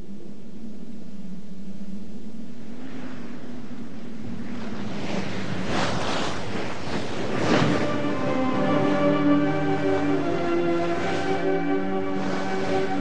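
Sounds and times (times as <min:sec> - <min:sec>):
low steady hum: 0:00.0 - 0:13.0
wind: 0:00.0 - 0:13.0
rushing river water: 0:04.6 - 0:13.0.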